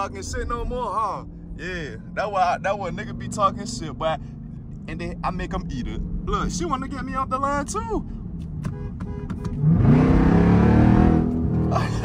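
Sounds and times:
car engine accelerating hard: 0:09.4 - 0:12.0.

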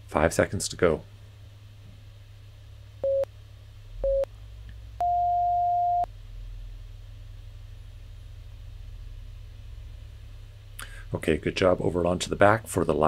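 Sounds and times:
interval timer beeping: 0:05.0 - 0:06.1.

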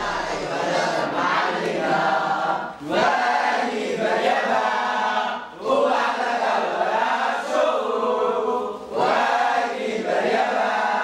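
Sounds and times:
young voices singing unaccompanied: 0:00.0 - 0:11.0.

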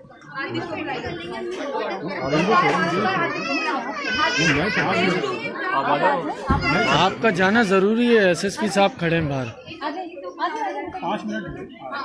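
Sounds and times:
hubbub of voices: 0:00.0 - 0:12.0.

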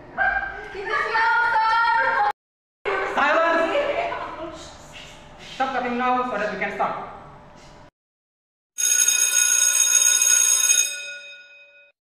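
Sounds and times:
bell ringing: 0:08.8 - 0:12.0.

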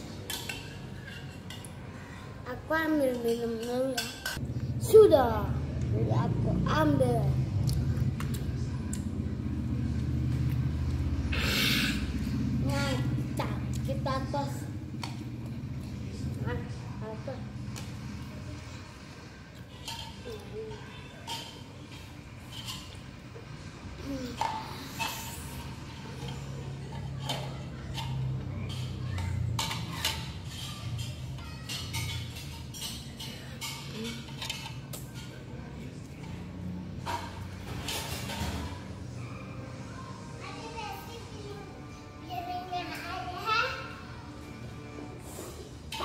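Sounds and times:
child's voice: 0:02.0 - 0:04.2, 0:04.8 - 0:07.4, 0:12.6 - 0:14.7, 0:24.0 - 0:24.6, 0:40.1 - 0:44.1.

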